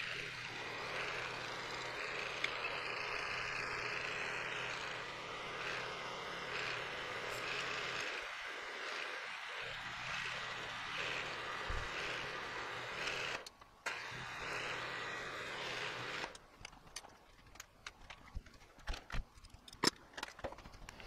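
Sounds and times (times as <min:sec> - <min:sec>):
milling machine drilling metal: 0:00.0 - 0:16.4.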